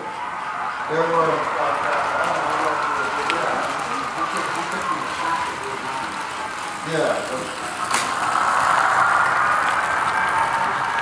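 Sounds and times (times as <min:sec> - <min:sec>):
model train rolling rumble: 0:00.0 - 0:11.0.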